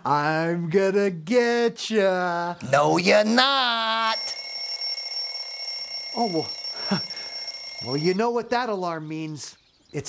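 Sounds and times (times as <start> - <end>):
high-pitched alarm ringing: 4.0 - 8.2.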